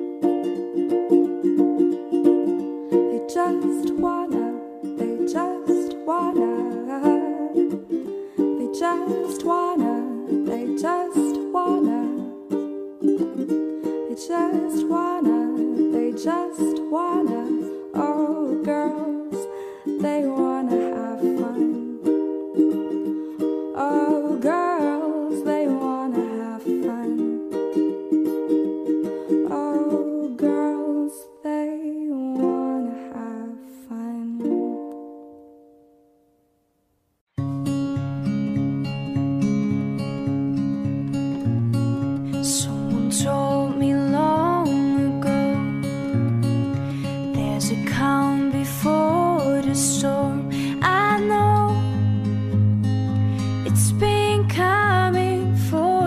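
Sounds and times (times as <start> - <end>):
plucked string instrument melody: 0.0 - 36.6, 37.3 - 56.0.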